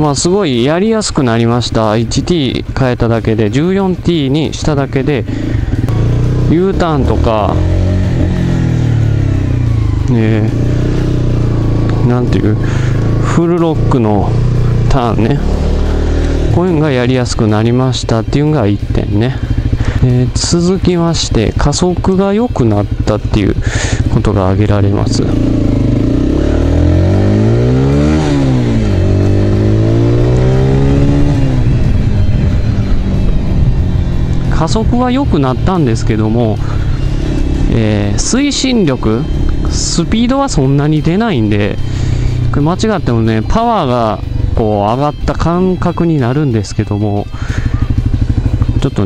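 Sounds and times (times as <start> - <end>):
motorcycle engine running: 0.0 - 49.0
road and wind noise: 0.0 - 49.0.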